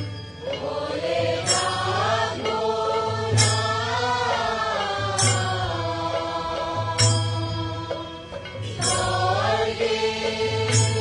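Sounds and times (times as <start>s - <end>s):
deep barrel drum beats: 0.0s - 11.0s
group chanting a song: 0.4s - 11.0s.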